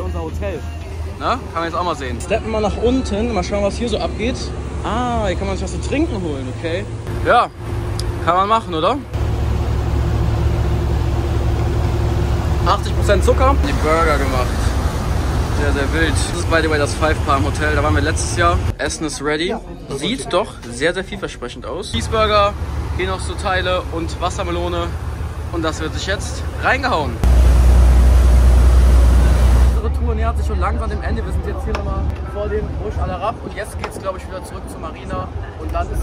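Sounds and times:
boat engine rumble: 0.0 - 18.7, 22.0 - 34.2.

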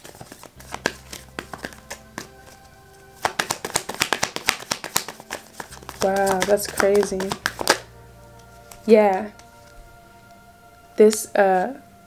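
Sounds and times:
cards being shuffled: 0.0 - 9.8.

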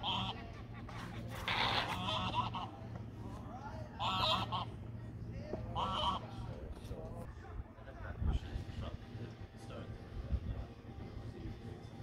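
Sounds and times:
bird honking: 0.0 - 0.5, 1.4 - 2.8, 4.0 - 4.8, 5.8 - 6.4
steady low hum: 0.0 - 12.0.

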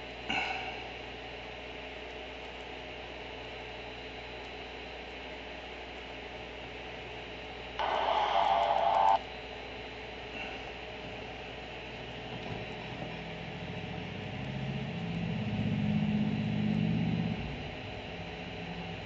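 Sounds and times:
media audio from phone speaker: 7.8 - 9.2
steady hiss and hum: 7.8 - 9.2.

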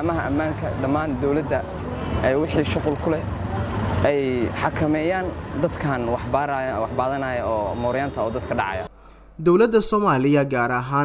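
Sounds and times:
man talking: 4.0 - 11.0.

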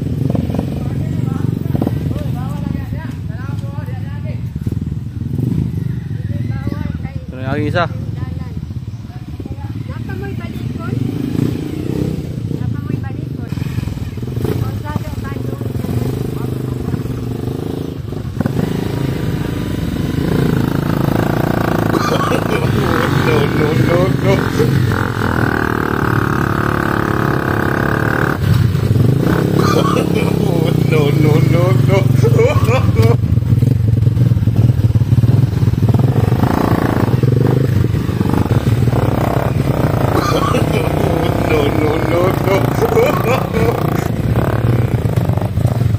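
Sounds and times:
motorcycle engine at low revs: 0.0 - 45.9
people's voices: 21.8 - 26.0, 29.3 - 33.2, 38.9 - 44.5.

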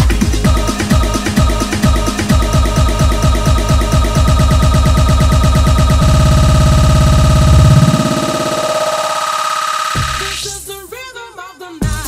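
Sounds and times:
kick drum roll: 0.0 - 8.5
electronic dance music: 0.0 - 11.0.

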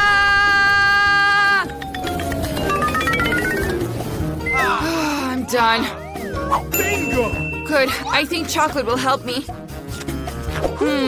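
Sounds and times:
comic falling glide: 1.6 - 4.8.

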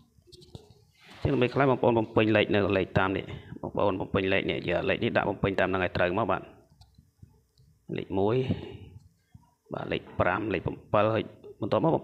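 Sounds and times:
person speaking: 0.2 - 6.8, 7.9 - 12.0.

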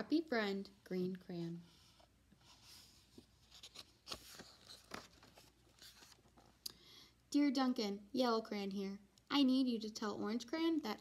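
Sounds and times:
paper rustling: 2.4 - 6.6.

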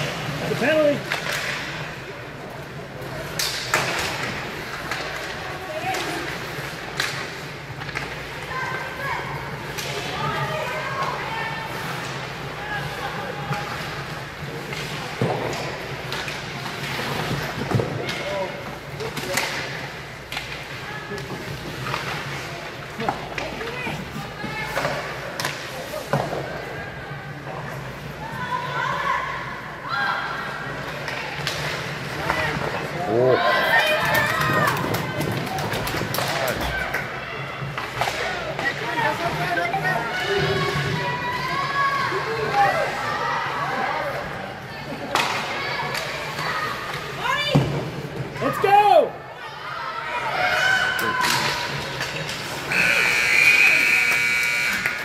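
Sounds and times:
hockey sticks and puck clacking: 0.0 - 26.7, 30.8 - 33.0, 33.6 - 43.1, 45.0 - 48.3, 50.5 - 55.0.

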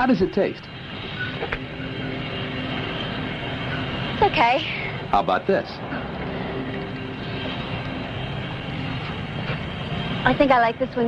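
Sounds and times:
airliner engines droning: 0.0 - 11.0
faint steady tones: 0.0 - 11.0.

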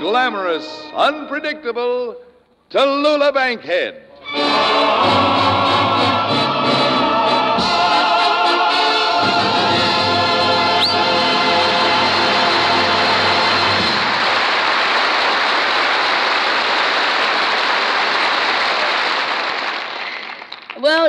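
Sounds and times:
band and chorus holding a chord: 4.2 - 14.6
short rising whistle: 10.7 - 11.1
studio audience applauding: 12.8 - 20.9.

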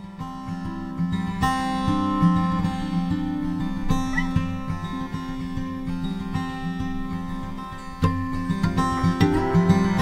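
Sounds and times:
acoustic guitar music: 0.0 - 10.0.

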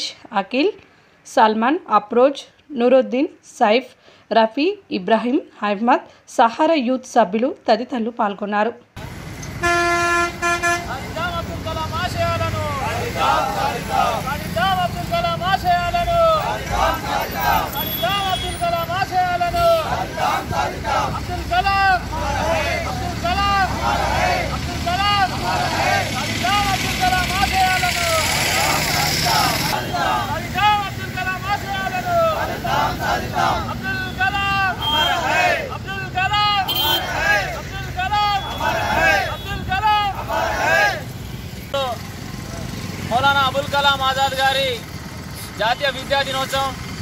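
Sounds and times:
traffic noise: 8.8 - 47.0
vehicle horn honking: 9.6 - 11.1, 17.5 - 18.9, 34.0 - 35.4, 36.6 - 37.2, 38.2 - 39.7
voices calling out: 10.4 - 41.2
men shouting slogans: 10.8 - 41.1.

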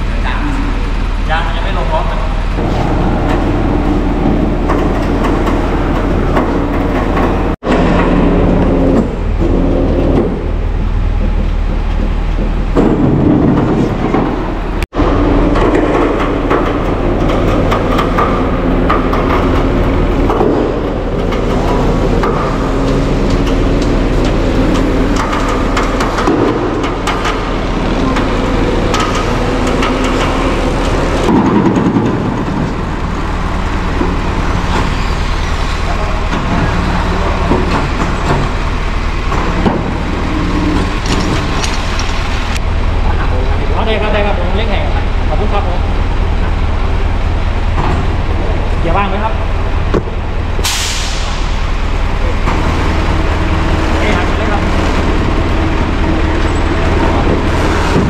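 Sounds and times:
diesel engine running: 0.0 - 58.0.

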